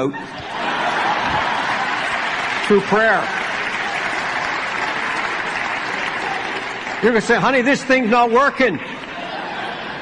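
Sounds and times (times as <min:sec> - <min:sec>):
congregation applauding: 0:00.5 - 0:10.0.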